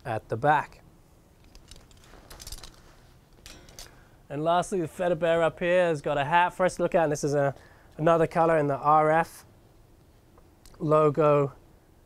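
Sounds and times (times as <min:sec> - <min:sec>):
plastic hanger clicking and rustling: 0:01.4 - 0:02.8, 0:03.4 - 0:04.0.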